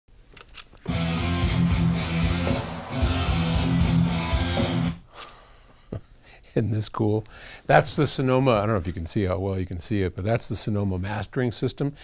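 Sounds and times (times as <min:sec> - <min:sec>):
guitar music over speakers: 0:00.9 - 0:05.0.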